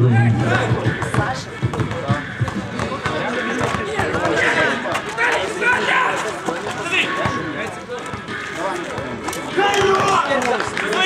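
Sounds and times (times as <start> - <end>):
men's voices: 0.0 - 11.0
basketball bouncing on hard court: 0.8 - 5.0.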